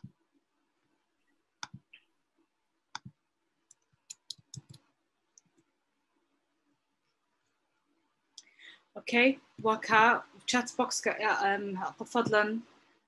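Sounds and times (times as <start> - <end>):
mouse and keyboard clicks: 1.6 - 2.0, 3.0 - 4.8.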